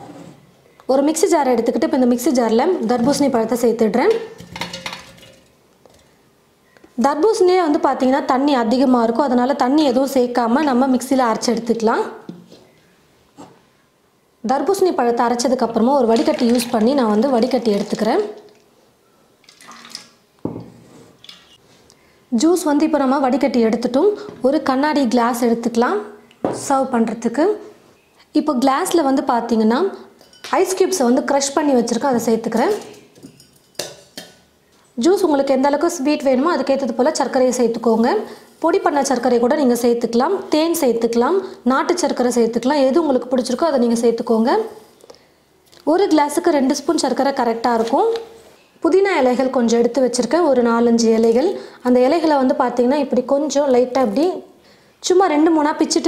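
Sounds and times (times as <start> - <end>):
woman speaking: 0.9 - 4.3, 7.0 - 12.3, 14.4 - 18.5, 22.4 - 27.7, 28.4 - 33.0, 35.0 - 44.8, 45.8 - 48.2, 48.8 - 56.0
metal bowl clattering against jar: 4.2 - 5.5, 16.0 - 18.4, 32.6 - 34.3.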